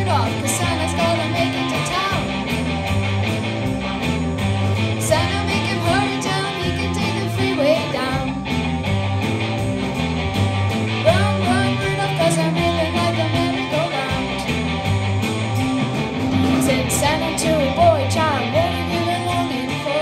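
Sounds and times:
girl singing into microphone: 0.0 - 2.2, 5.0 - 8.3, 11.1 - 14.4, 16.6 - 20.0
bass guitar: 0.0 - 20.0
drum kit: 0.0 - 20.0
electric guitar: 0.0 - 20.0.

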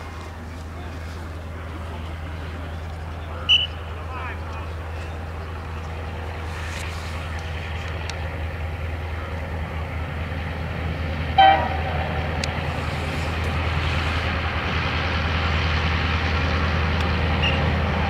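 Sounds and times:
freight train rumbling past: 0.0 - 18.0
train horn toot: 11.4 - 12.3.

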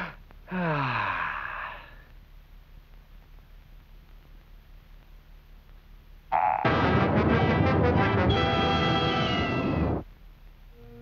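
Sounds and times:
soft orchestral notes: 7.2 - 9.8.

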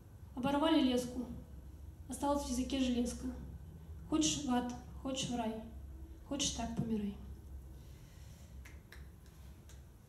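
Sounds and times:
low room hum: 0.0 - 10.0
woman speaking: 0.4 - 1.5, 2.1 - 3.5, 4.1 - 7.3.

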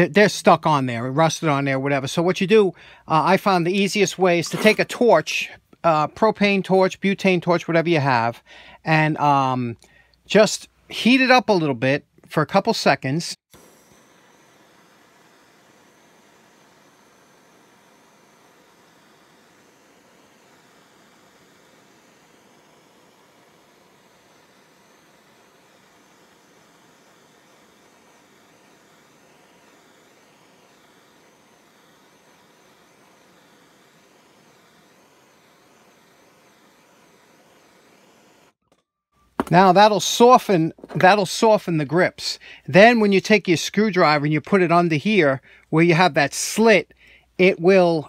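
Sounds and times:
gas torch hissing: 2.7 - 5.6, 13.4 - 38.6, 39.4 - 43.1.

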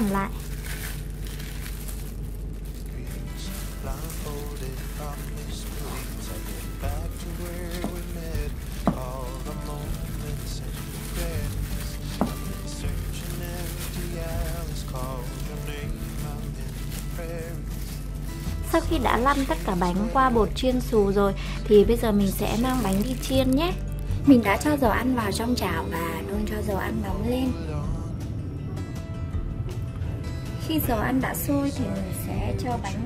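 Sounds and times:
wavering melody over bass line: 2.6 - 33.0.

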